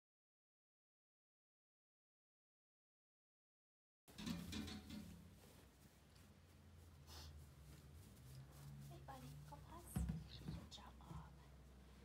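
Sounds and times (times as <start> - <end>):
soft bumps: 4.1 - 12.0
dog paws thumping on exercise ball: 4.4 - 11.7.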